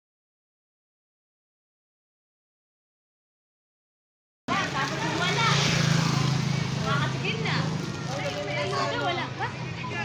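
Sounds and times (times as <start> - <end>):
vehicle engine humming: 4.5 - 9.9
people's voices: 4.5 - 10.0.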